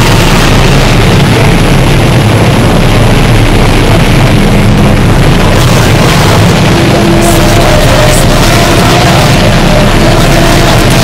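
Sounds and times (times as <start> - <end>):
harsh noise wall: 0.0 - 11.0
low rumbling drone: 0.0 - 11.0.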